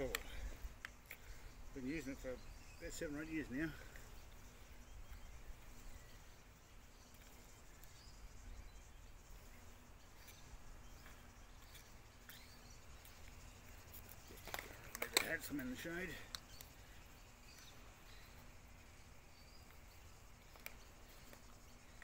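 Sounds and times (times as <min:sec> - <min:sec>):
faint high chirps: 0:00.0 - 0:22.0.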